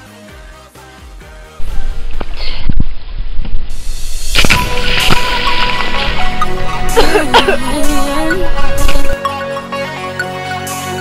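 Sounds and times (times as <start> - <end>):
water splashing: 3.8 - 9.2.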